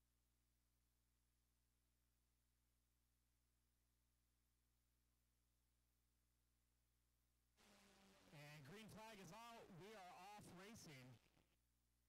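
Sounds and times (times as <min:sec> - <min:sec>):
man speaking: 0:08.4 - 0:11.2.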